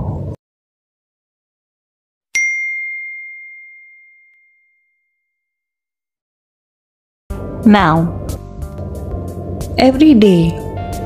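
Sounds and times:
bell ding: 2.4 - 5.6.

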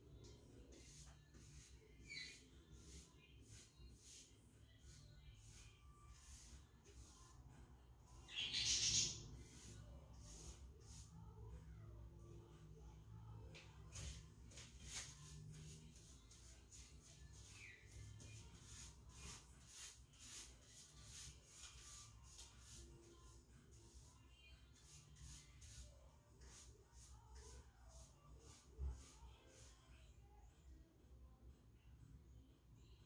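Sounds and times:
scratchy paintbrush strokes: 0.2 - 11.6, 12.4 - 30.1.

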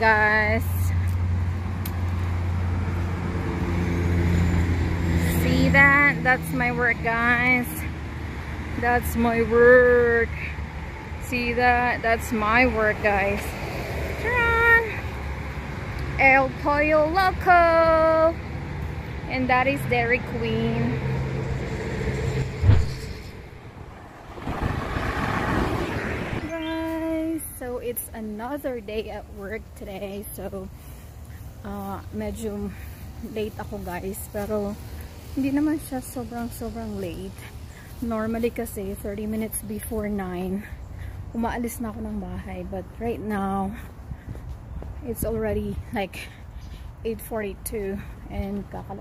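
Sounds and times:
traffic rumble: 0.0 - 49.0
vehicle engine hum: 0.0 - 49.0
car tyres rushing: 21.4 - 26.7
sudden thump: 22.6 - 25.2.

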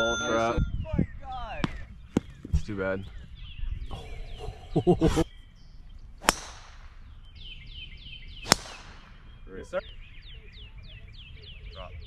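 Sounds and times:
bird chirping: 0.0 - 12.0
golf club striking ball: 6.2 - 7.0, 8.4 - 9.3.

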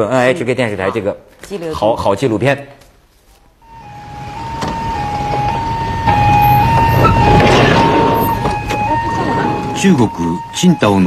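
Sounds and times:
road noise: 3.6 - 11.0
two-tone ambulance siren: 3.6 - 11.0.

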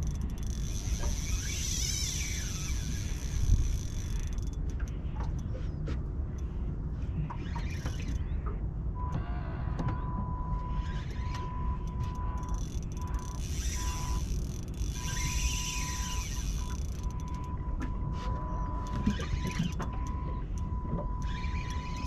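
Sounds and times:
electric motor whine: 13.0 - 17.5.

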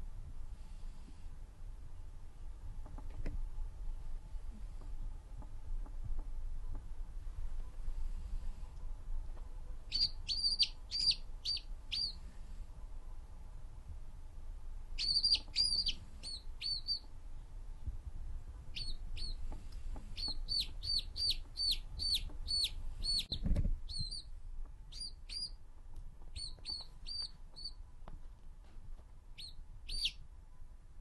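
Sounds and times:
quail chirping: 9.9 - 12.2, 15.0 - 17.1, 18.8 - 19.4, 20.1 - 24.3, 24.9 - 25.6, 26.3 - 27.8, 29.4 - 30.2.

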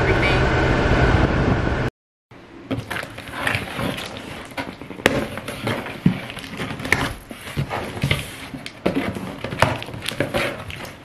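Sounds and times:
cardboard flaps rustling: 2.8 - 11.0.

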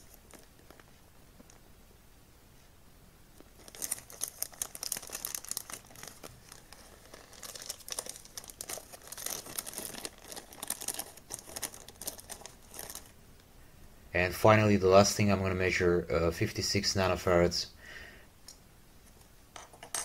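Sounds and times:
plastic bag crinkling: 0.0 - 1.6, 3.4 - 13.2.

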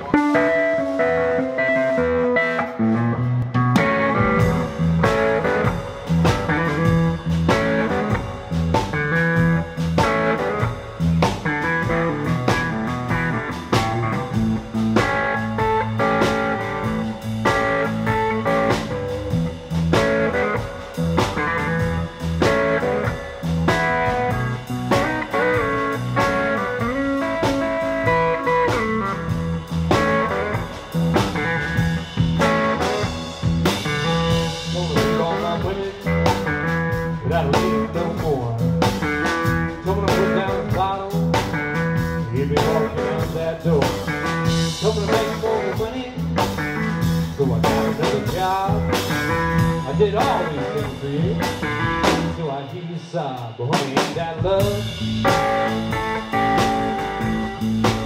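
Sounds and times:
drum kit steady beat: 0.0 - 2.8, 3.4 - 58.0
bass: 0.0 - 58.0
electric guitar: 0.0 - 58.0.

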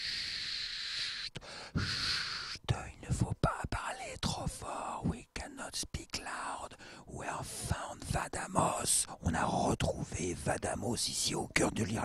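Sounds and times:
soft whispering: 0.0 - 12.0
man shushing: 0.7 - 2.6.

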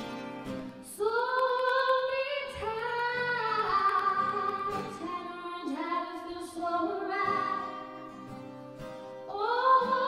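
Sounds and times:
acoustic guitar: 0.0 - 10.0
woman singing: 0.8 - 8.0, 9.3 - 10.0.

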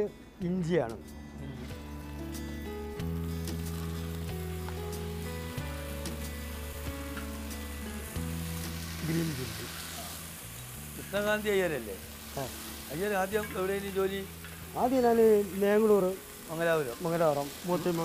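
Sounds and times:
background music of low notes: 0.0 - 18.0
food sizzling in hot oil: 1.4 - 18.0.

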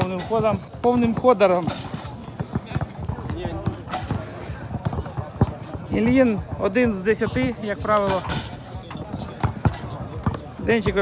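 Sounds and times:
background chatter: 0.0 - 11.0
basketballs bouncing on court: 0.0 - 11.0.

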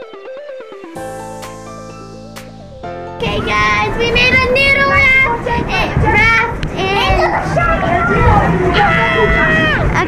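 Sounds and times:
young girls' high-pitched voices: 3.2 - 10.0.

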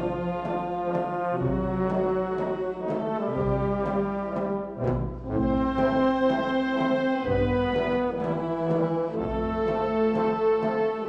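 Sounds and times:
band playing a funeral march: 0.0 - 11.0.

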